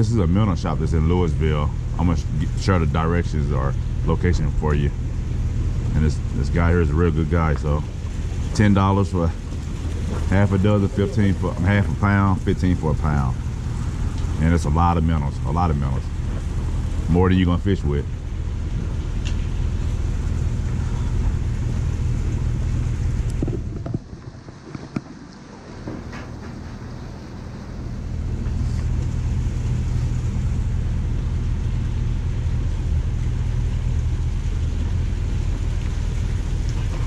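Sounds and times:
low motor hum: 0:00.0 - 0:37.0.

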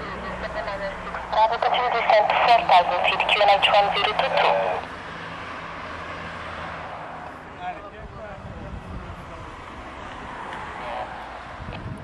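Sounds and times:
voice over radio speaker: 0:00.0 - 0:04.9, 0:10.8 - 0:11.2.

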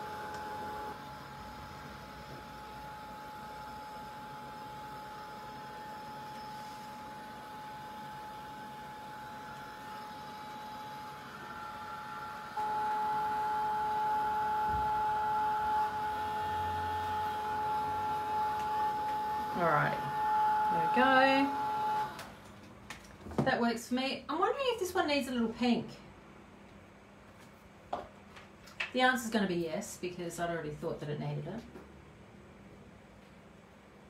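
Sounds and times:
heat tool fan whine: 0:00.0 - 0:34.0.

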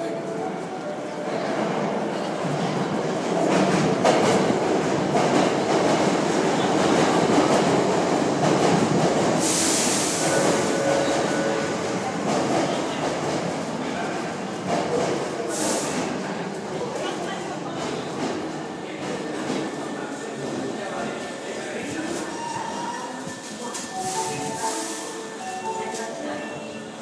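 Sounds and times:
sharp hiss: 0:09.4 - 0:10.8.

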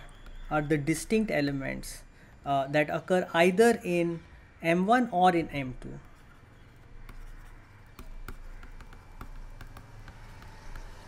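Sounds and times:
stylus tapping on tablet screen: 0:07.0 - 0:11.0.

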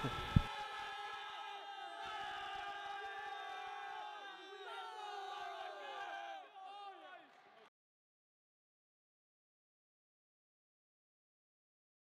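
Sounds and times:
young men yelling and cheering: 0:00.0 - 0:07.7.

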